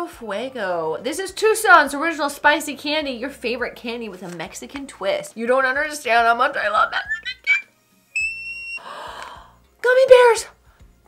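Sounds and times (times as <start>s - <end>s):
electronic beep: 7.0s - 8.8s.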